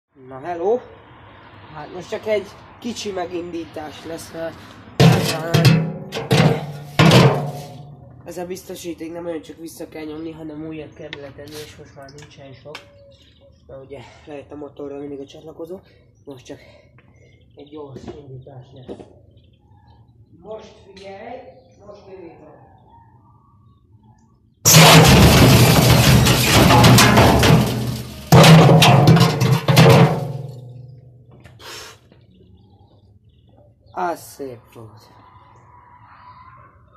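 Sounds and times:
brick clunking in metal drum: 0:05.0 - 0:07.9, 0:24.7 - 0:30.8.

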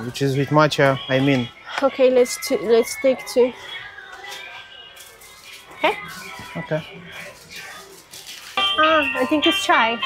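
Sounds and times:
background music: 0:00.0 - 0:10.0
people talking: 0:08.7 - 0:10.0.

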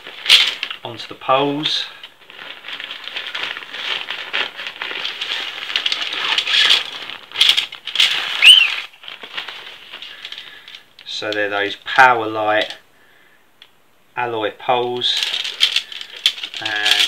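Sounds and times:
tent fabric rustling: 0:01.4 - 0:10.2
tent poles rattling: 0:02.3 - 0:10.4, 0:15.2 - 0:17.0
brief squeak: 0:08.4 - 0:08.9.

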